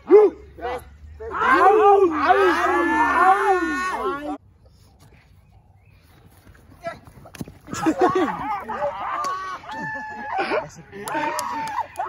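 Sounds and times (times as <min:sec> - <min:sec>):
young men shouting and shrieking: 0:00.0 - 0:04.4, 0:07.7 - 0:12.0.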